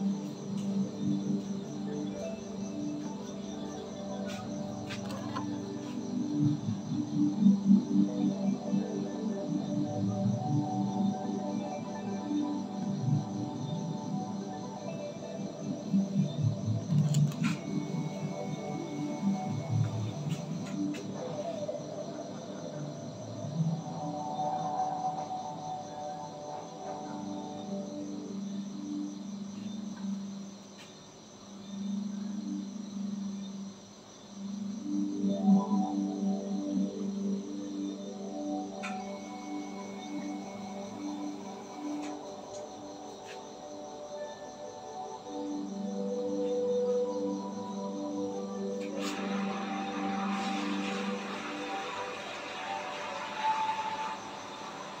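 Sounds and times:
ambient background music: 0.0s - 55.0s.

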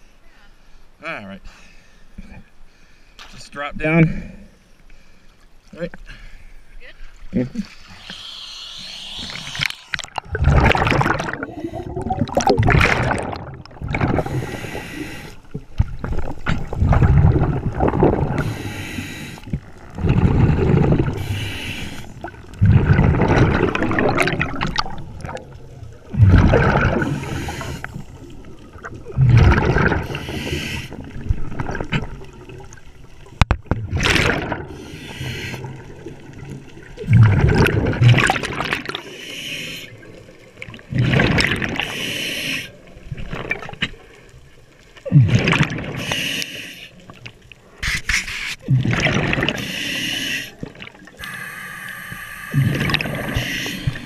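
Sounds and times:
bubbling gurgling exhale: 7.5s - 44.0s, 45.0s - 46.5s, 48.6s - 54.0s
regulator inhale hiss: 7.9s - 9.8s, 14.2s - 15.5s, 18.4s - 19.6s, 21.1s - 22.3s, 27.1s - 28.1s, 30.0s - 31.1s, 34.7s - 35.8s, 39.0s - 40.0s, 41.8s - 42.8s, 46.0s - 47.0s, 49.6s - 50.6s, 51.2s - 54.0s.

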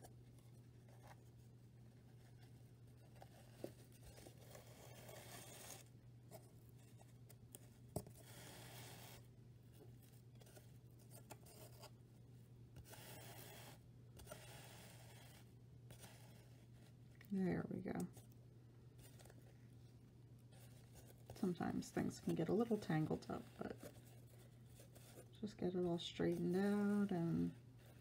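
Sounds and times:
yarn rustling and scraping: 0.0s - 11.8s, 18.9s - 28.0s
low steady hum: 0.0s - 28.0s.

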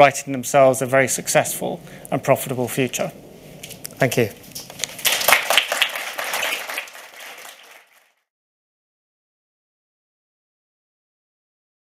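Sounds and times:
audience applauding: 4.8s - 8.2s.

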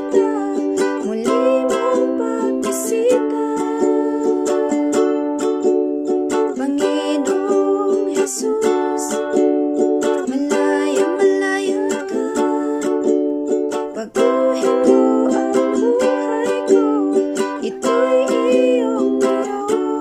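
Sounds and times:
ukulele strumming: 0.0s - 20.0s.

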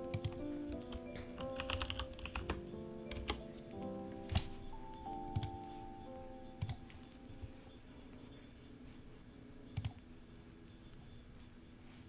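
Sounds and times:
computer keyboard typing: 0.0s - 4.6s, 5.2s - 5.6s, 6.6s - 7.2s, 9.7s - 10.0s
background music of held notes: 0.0s - 9.0s.

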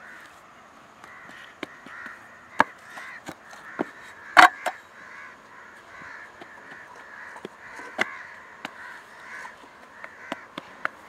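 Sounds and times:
crows cawing: 0.0s - 11.0s.

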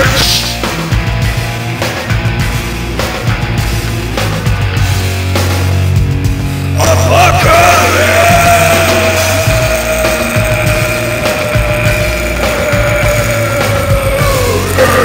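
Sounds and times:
rock backing track: 0.0s - 15.0s
man yelling a long sung note: 6.8s - 15.0s.

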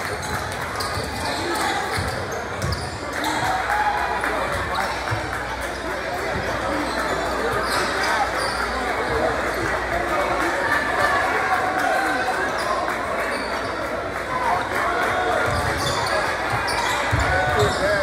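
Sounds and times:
crowd chatter and shouting: 0.0s - 18.0s.

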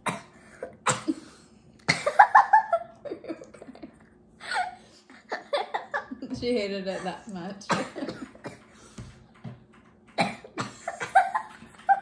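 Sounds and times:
girl coughing and spluttering: 0.0s - 2.6s, 7.0s - 8.6s, 10.2s - 11.5s.

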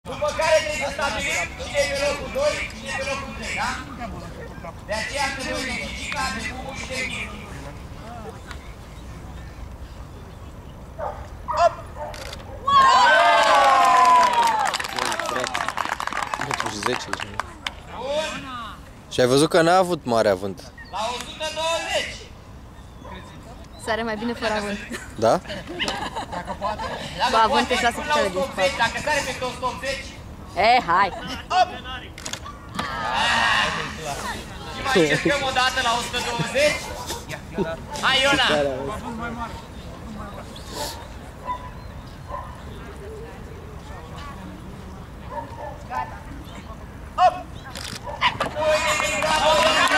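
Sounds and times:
murmur of people talking: 0.0s - 12.8s, 14.4s - 49.9s
people talking: 33.2s - 40.5s.

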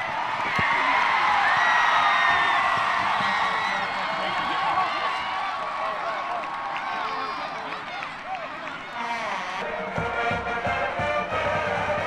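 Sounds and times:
stadium crowd cheering and shouting: 0.0s - 12.0s.

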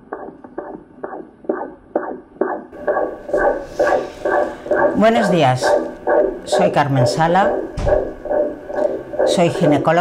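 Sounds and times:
doppler heartbeat whooshing pulses: 0.0s - 10.0s.

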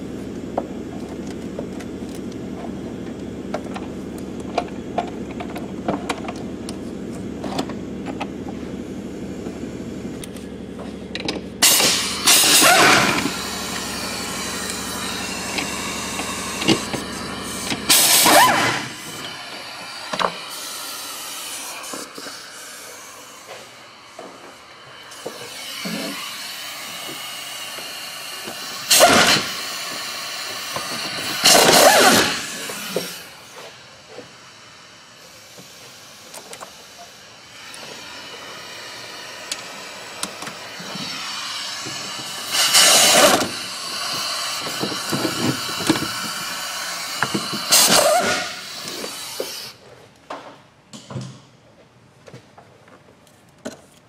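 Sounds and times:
impact wrench bursts: 11.1s - 49.8s.

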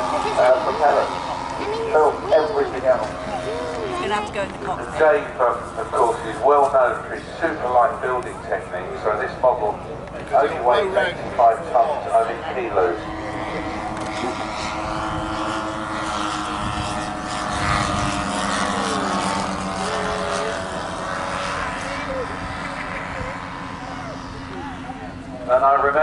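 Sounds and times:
model aircraft engines droning: 0.0s - 26.0s.

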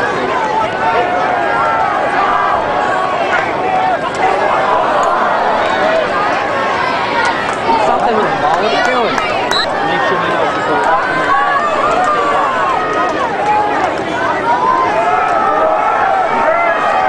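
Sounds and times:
spectators talking and shouting: 0.0s - 17.0s.

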